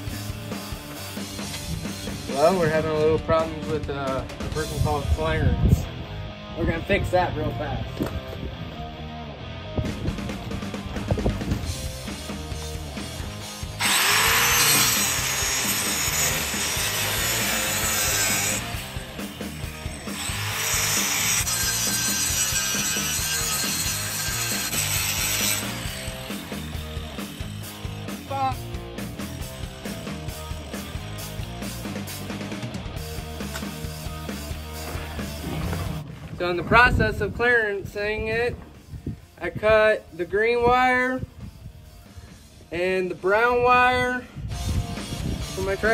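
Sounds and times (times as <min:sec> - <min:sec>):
background music: 0:00.0 - 0:37.0
electric drill grinding through metal: 0:12.2 - 0:32.2.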